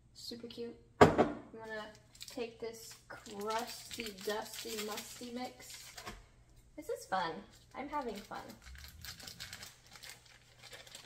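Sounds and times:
packet crinkling: 2.0 - 6.1, 7.5 - 11.0.

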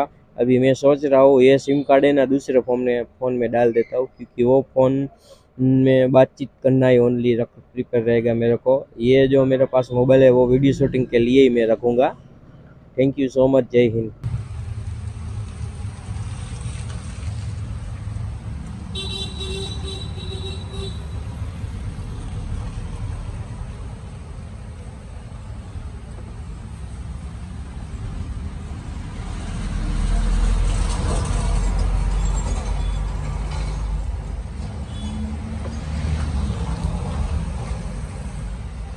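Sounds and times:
rumble of passing vehicles: 0.0 - 38.9
heavy vehicle passing close: 14.2 - 38.9
vehicle horn: 18.9 - 21.4, 34.8 - 35.4.

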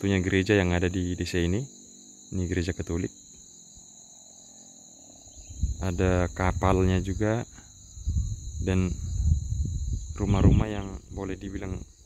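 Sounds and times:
high-pitched insect chorus: 0.0 - 12.0.

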